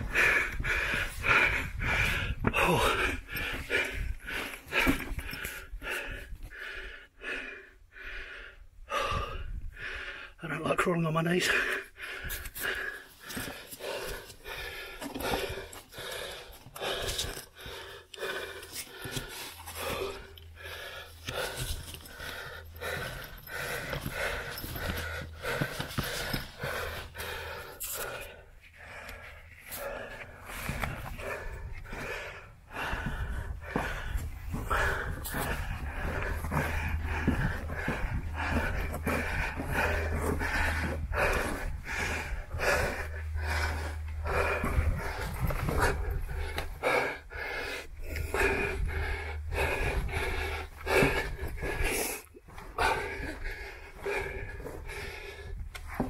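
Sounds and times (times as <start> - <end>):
man panting: 0.0 - 56.0
knees scraping on dirt floor: 32.8 - 46.8.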